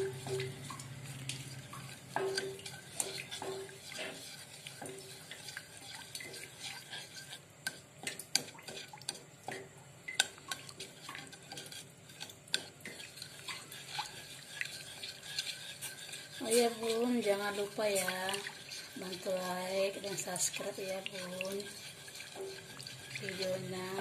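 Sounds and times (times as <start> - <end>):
spatula scraping saucepan: 0.0 - 9.3, 10.2 - 24.0.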